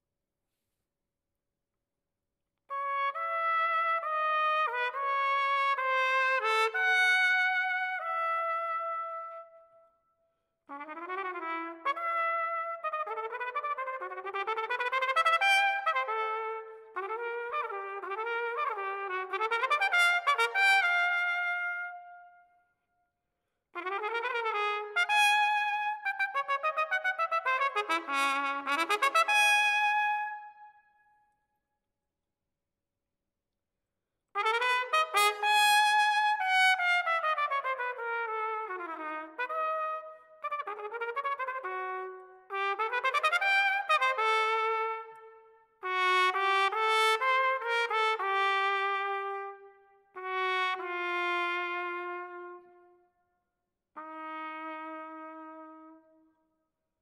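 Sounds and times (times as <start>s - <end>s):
solo trumpet playing: 2.7s - 9.5s, 10.7s - 22.4s, 23.8s - 30.7s, 34.4s - 53.0s, 54.0s - 56.2s.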